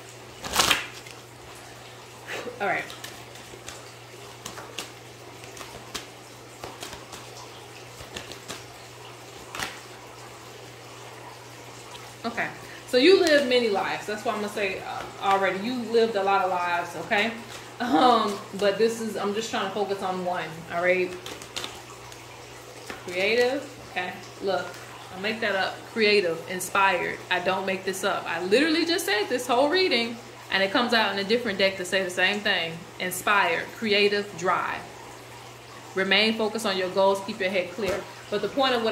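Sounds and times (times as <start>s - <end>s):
cards being shuffled: 0.4s - 1.2s, 2.8s - 7.4s, 8.0s - 8.7s, 9.4s - 9.9s, 21.1s - 22.2s.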